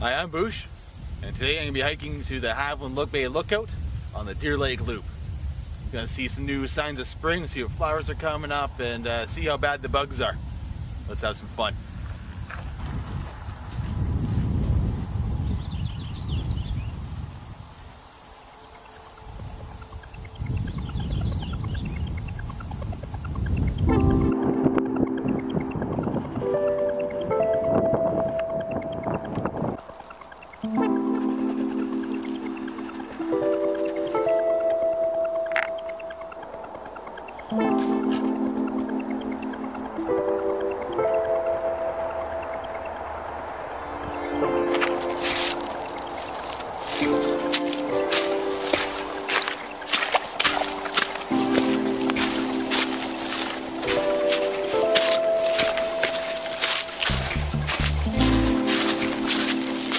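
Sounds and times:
wind noise on microphone: 0.0s - 59.9s
instrumental background music: 23.2s - 59.9s.

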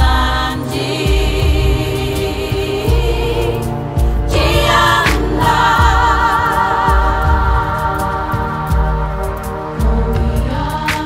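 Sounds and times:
women's choir singing: 0.0s - 11.0s
low bass pulse: 1.1s - 10.8s.

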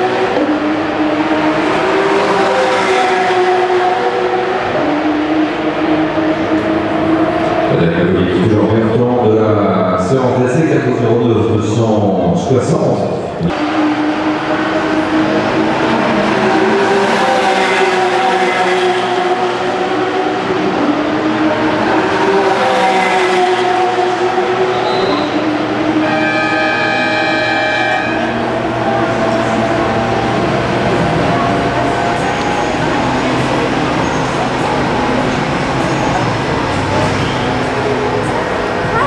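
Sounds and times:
race car engines passing at speed: 0.0s - 39.0s.

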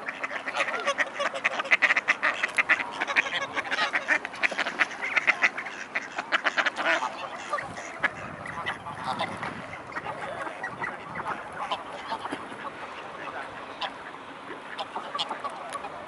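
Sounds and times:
ducks quacking: 0.0s - 16.0s
geese calling: 0.0s - 16.0s.

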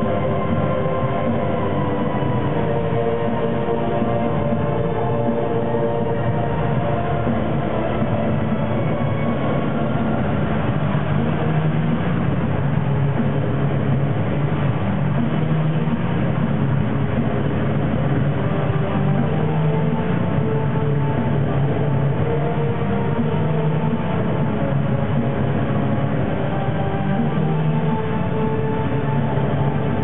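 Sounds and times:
dense rumbling droning music: 0.0s - 30.0s.

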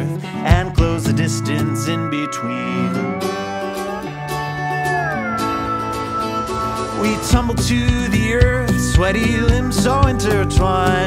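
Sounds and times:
acoustic guitar strumming: 0.0s - 11.0s
held lead note sliding down: 1.6s - 10.4s.

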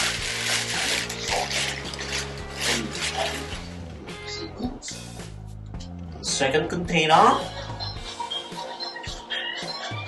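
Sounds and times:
plastic bag rustling and crinkling: 0.0s - 3.6s
background music: 0.0s - 10.0s.

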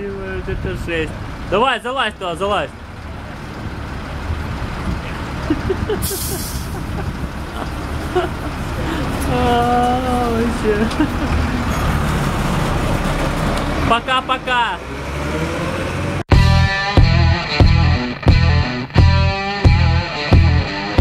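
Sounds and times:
diesel engine idling: 0.0s - 14.9s
short sharp air hiss: 6.1s - 6.8s.

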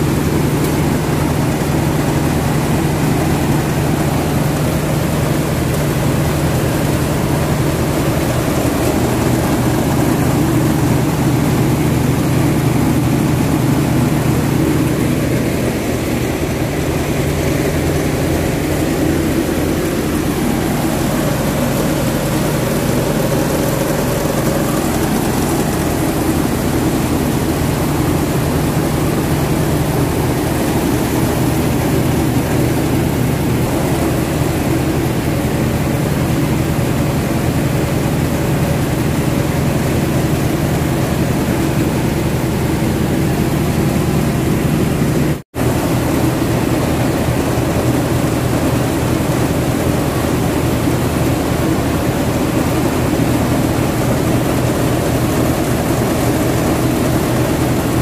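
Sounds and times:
rice mill machine hum: 0.0s - 58.0s.

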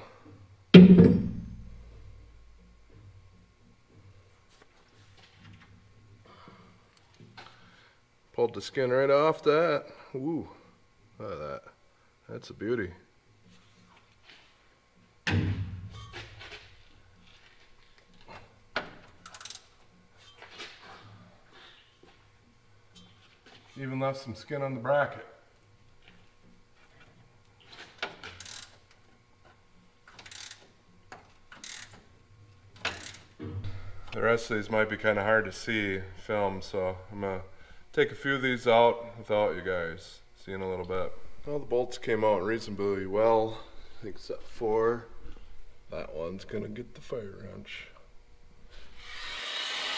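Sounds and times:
hand ratchet wrench clicking: 19.2s - 19.7s, 28.2s - 28.8s, 30.1s - 30.7s, 31.5s - 32.0s, 32.8s - 33.2s.

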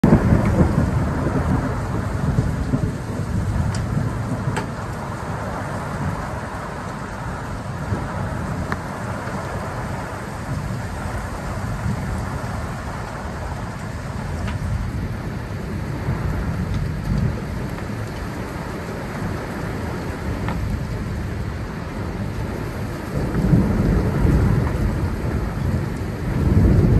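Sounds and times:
hard rain on pavement: 0.0s - 26.9s
thunder rumble: 0.0s - 26.9s.

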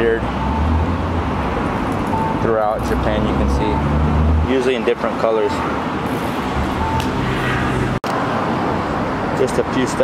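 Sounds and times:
road traffic noise: 0.0s - 10.0s.

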